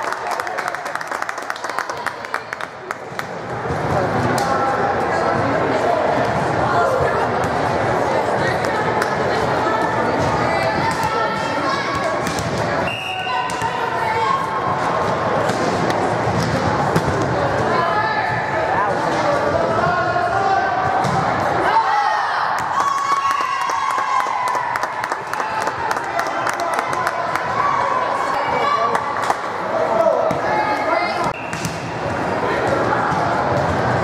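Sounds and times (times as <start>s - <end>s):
people clapping: 0.0s - 3.5s, 22.6s - 27.8s, 28.9s - 29.5s
volleyball hits and thuds: 15.4s - 17.4s.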